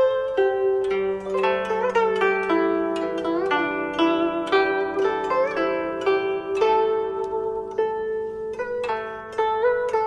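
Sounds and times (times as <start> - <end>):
zither plucked melody: 0.0 - 10.0.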